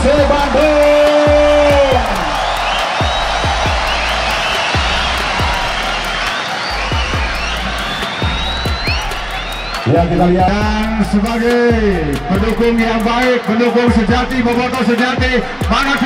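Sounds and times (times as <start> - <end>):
stadium crowd cheering: 0.0 - 16.0
high rising whoops: 0.4 - 9.9.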